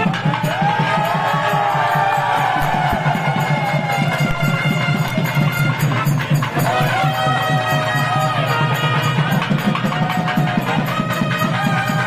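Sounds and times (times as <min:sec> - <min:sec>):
drums beating fast: 0:00.0 - 0:12.0
wavering reed pipe melody: 0:02.4 - 0:12.0.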